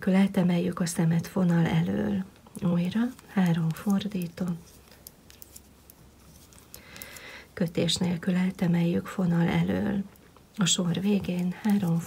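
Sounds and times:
yarn rustling: 1.3 - 8.2, 11.0 - 12.0
knitting needles clicking: 2.3 - 7.9.

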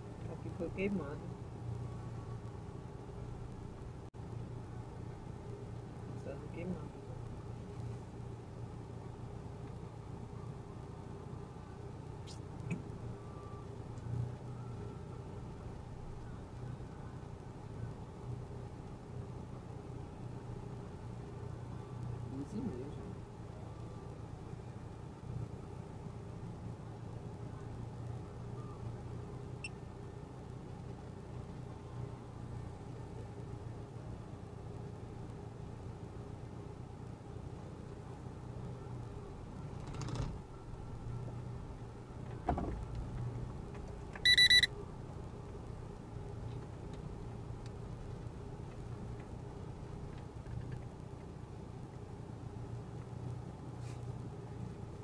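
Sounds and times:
short loud electronic beep: 44.3 - 44.7.

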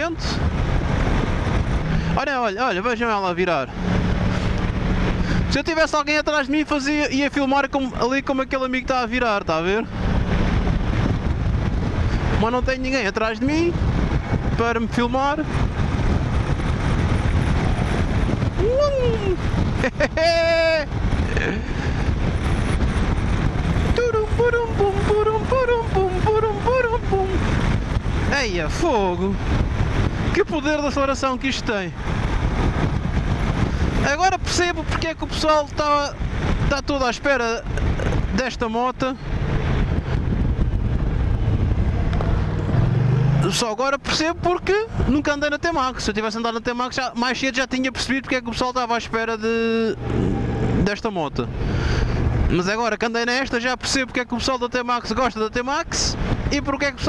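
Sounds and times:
wind rush: 0.0 - 57.0
scooter engine cruising: 39.3 - 43.6.

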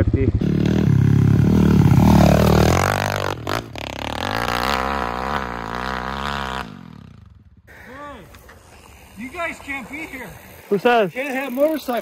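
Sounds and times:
motorbike engine revving: 0.3 - 7.5.

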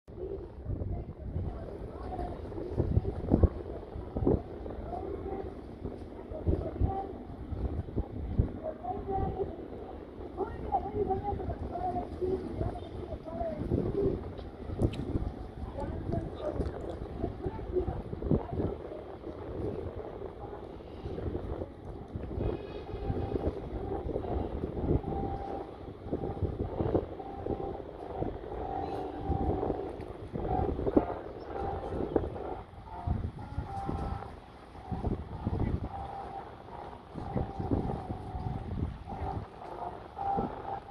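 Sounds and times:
people talking: 0.1 - 40.9
wind buffeting microphone: 0.1 - 40.9.

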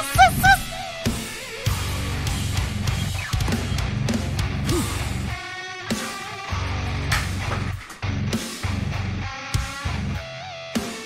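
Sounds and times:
man laughing loudly: 0.0 - 1.5, 4.7 - 5.2
heavy metal song: 0.0 - 11.0.

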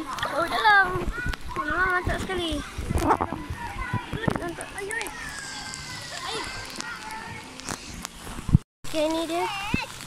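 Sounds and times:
distant voices of people and children: 0.0 - 7.7.

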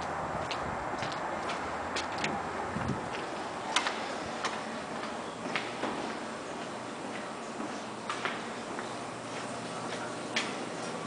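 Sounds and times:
footsteps on tiled floor: 0.0 - 11.0.

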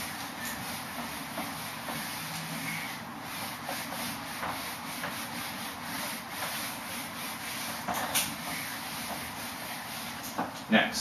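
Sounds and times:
whiteboard being wiped by hand: 0.0 - 10.8.

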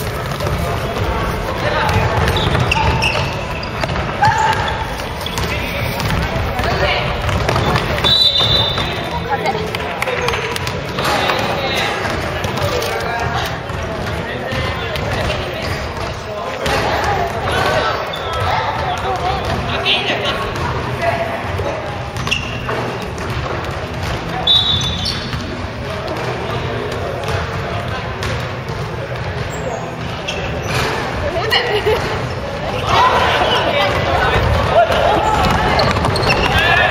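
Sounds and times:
basketball bouncing on wooden floor: 0.1 - 19.7, 21.9 - 25.5, 33.9 - 36.6
players calling out: 29.2 - 36.9.

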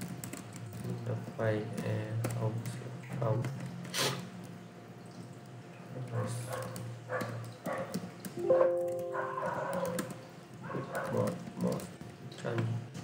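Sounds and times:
short pitched tone: 8.4 - 9.9.

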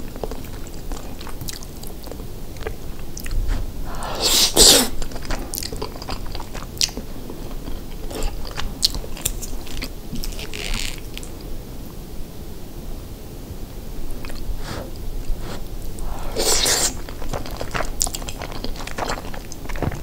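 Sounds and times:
wet chewing with mouth clicks: 0.0 - 11.5, 14.1 - 20.0.

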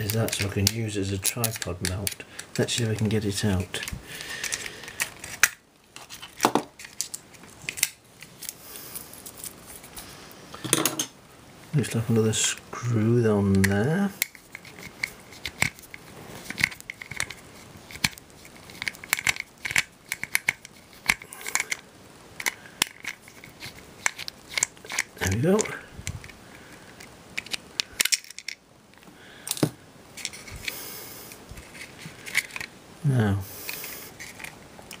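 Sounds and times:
screwdriver clicking and scraping on screw: 0.0 - 8.6, 13.5 - 21.8, 22.4 - 28.6, 31.6 - 32.7, 33.7 - 35.0.

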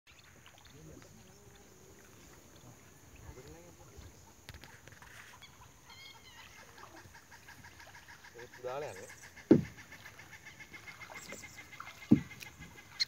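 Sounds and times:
distant bird calls: 0.1 - 13.0
faint outdoor ambience: 0.1 - 13.0.

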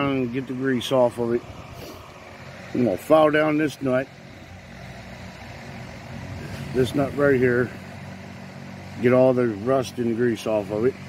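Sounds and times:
engine humming steadily: 0.0 - 11.0.

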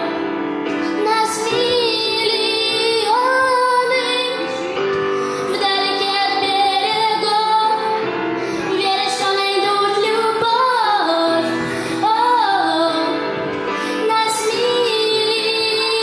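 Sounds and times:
backing music: 0.0 - 16.0
girl singing into microphone: 0.0 - 16.0.

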